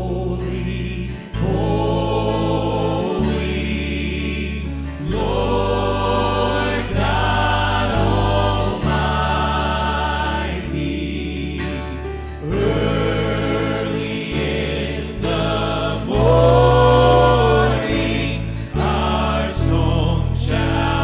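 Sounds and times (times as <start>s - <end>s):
bass line: 0.0s - 21.0s
group singing gospel song: 0.0s - 21.0s.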